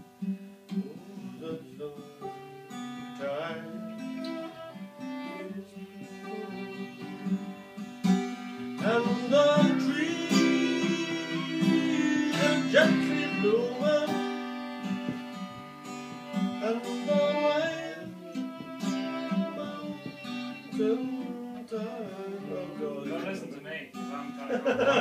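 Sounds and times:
acoustic guitar strumming: 0.0 - 25.0
man singing: 0.8 - 2.4, 3.2 - 4.4, 5.1 - 7.2, 8.6 - 14.8, 16.5 - 23.3
fiddle playing: 1.5 - 25.0.

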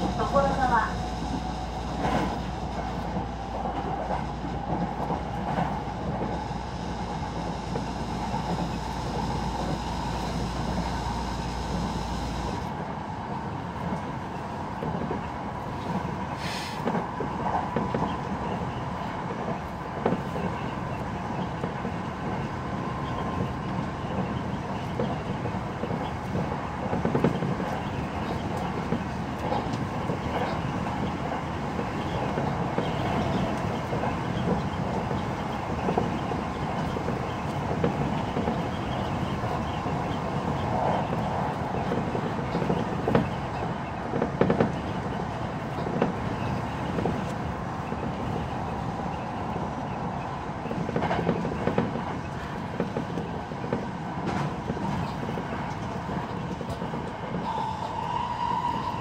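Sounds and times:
train wheels rumbling on rail: 0.0 - 59.0.

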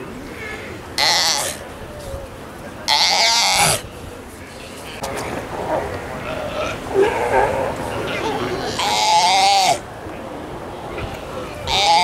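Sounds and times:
sea lion pup calling: 4.8 - 9.8.

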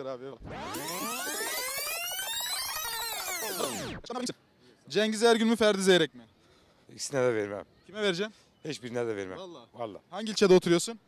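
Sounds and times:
synthesized gliding tones: 0.4 - 4.0.

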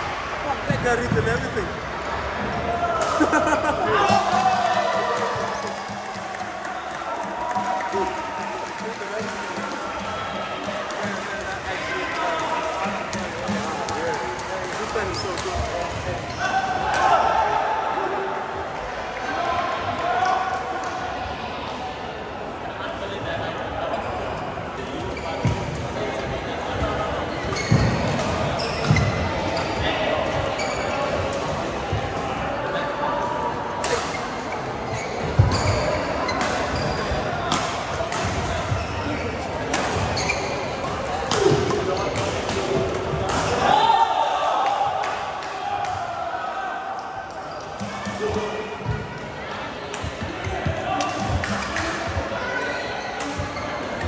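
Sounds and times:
voices in a large hall: 0.0 - 54.0
rackets hitting shuttlecock: 12.4 - 16.0, 35.3 - 38.8, 39.7 - 43.7, 49.9 - 52.2
shoes squeaking on court floor: 27.4 - 31.2, 34.0 - 37.3, 38.3 - 43.2.

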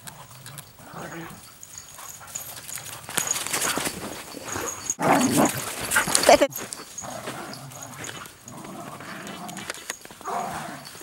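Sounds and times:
dogs growling while play-fighting: 0.0 - 11.0.

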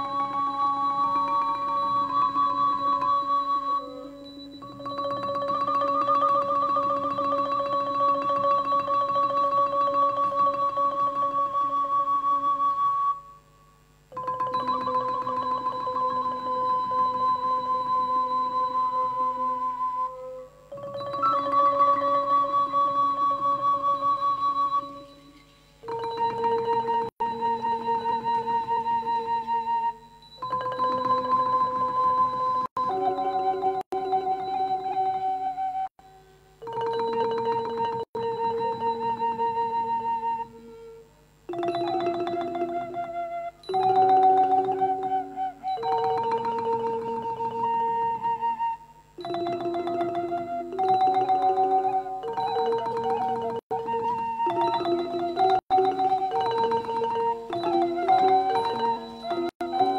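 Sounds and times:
wooden xylophone tremolo: 0.0 - 35.9, 36.6 - 59.9
long-held wavering melody notes: 0.0 - 59.9.

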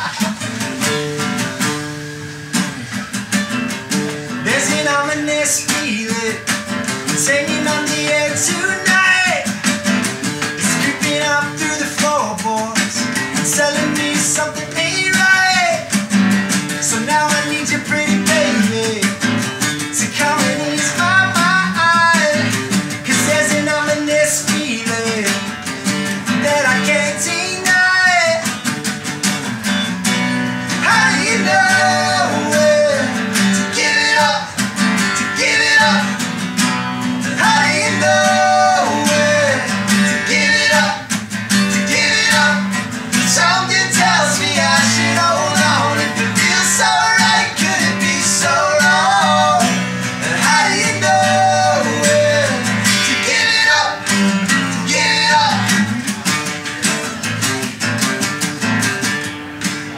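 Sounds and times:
acoustic guitar strumming: 0.0 - 59.9
man singing: 4.3 - 28.7, 30.5 - 57.5.

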